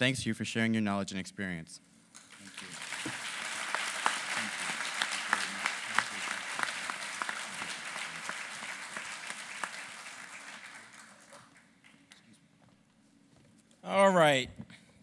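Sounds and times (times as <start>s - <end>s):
audience applauding: 2.2s - 12.3s.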